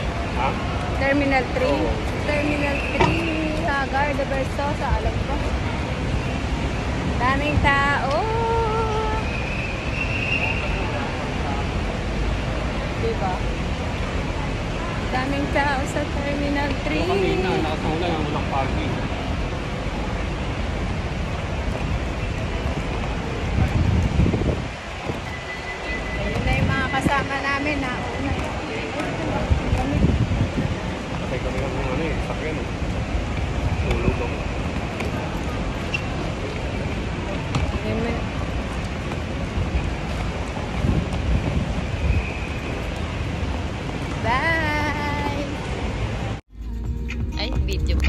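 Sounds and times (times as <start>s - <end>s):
steady traffic noise: 0.0s - 48.0s
wind buffeting microphone: 20.6s - 46.4s.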